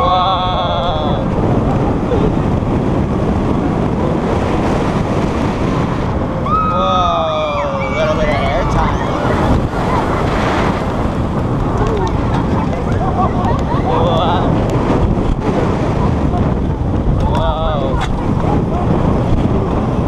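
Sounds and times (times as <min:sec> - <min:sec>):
wind buffeting microphone: 0:00.0 - 0:20.0
riders screaming: 0:06.4 - 0:14.5.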